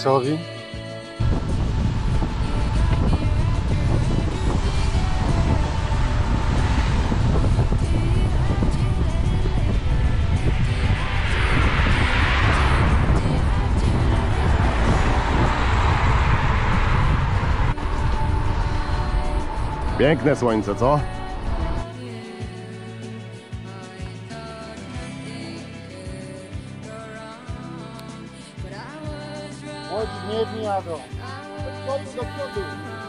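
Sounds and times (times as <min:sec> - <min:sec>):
road hiss: 0:01.0 - 0:23.9
wind buffeting microphone: 0:01.2 - 0:22.0
car passing: 0:01.2 - 0:22.8
faint music: 0:17.7 - 0:22.6.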